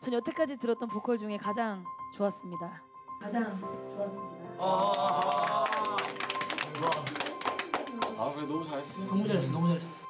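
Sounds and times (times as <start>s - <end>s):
people clapping: 4.6s - 8.8s.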